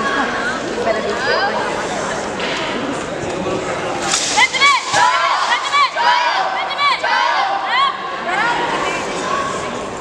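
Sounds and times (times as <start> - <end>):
high-pitched voices shouting: 4.4 - 9.6.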